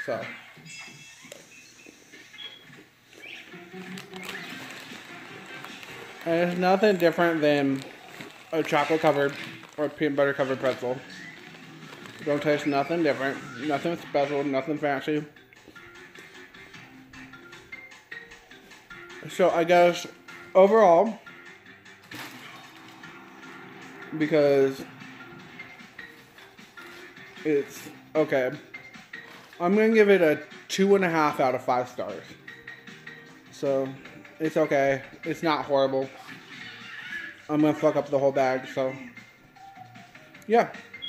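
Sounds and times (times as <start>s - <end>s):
faint background music: 0.0s - 41.0s
crunchy chewing: 3.2s - 9.8s, 11.0s - 12.3s.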